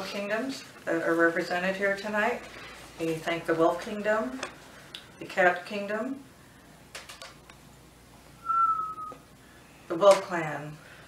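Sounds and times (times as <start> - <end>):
short whistled note: 8.4 - 9.2.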